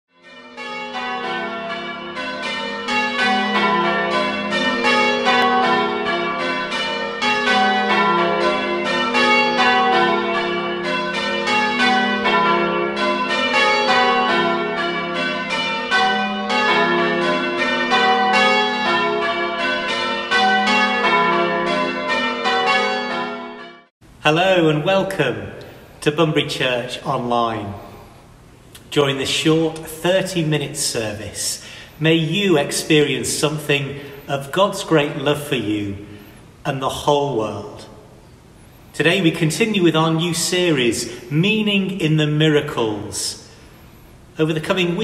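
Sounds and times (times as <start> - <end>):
church bells ringing: 0.1 - 45.0.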